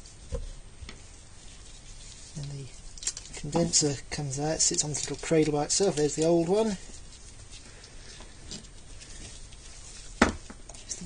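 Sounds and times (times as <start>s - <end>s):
faint handling noise: 0.0s - 11.0s.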